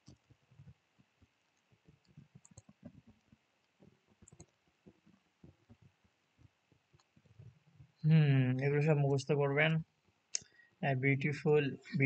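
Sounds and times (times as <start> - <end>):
small clicks: 1.6 - 5.0.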